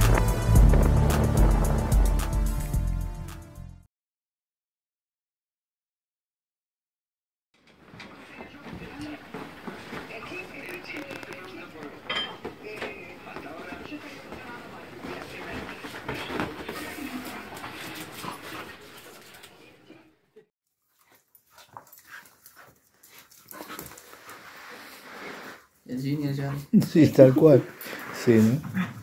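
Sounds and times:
dogs play-fighting: 0:07.8 - 0:20.0, 0:20.8 - 0:25.3, 0:26.4 - 0:29.0
scuffling: 0:12.6 - 0:18.6.

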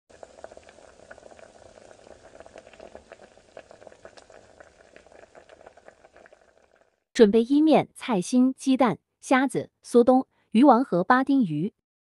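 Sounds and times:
broth bubbling in a pot: 0:00.1 - 0:07.1.

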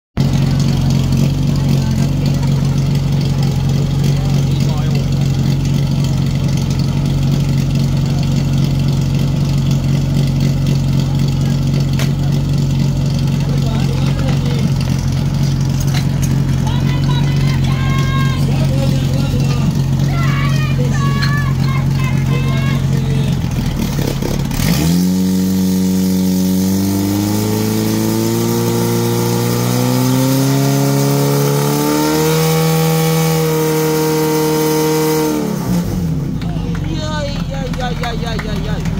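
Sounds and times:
fire pump engine running: 0:00.2 - 0:38.9
people shouting: 0:16.6 - 0:19.2, 0:19.9 - 0:23.4.

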